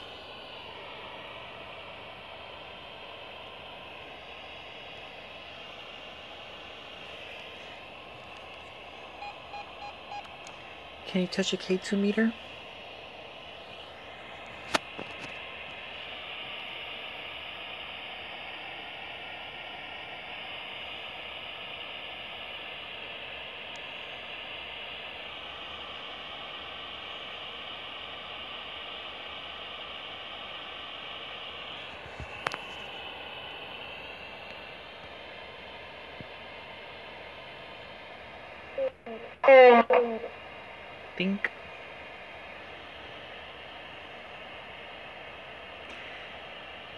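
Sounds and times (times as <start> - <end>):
radio static hiss: 0.0 - 46.9.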